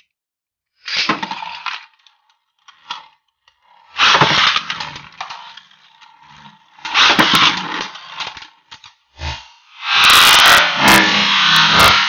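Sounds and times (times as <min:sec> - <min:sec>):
spinning top launches: 0:00.8 - 0:12.0
spinning tops rattling and clashing: 0:00.9 - 0:09.4.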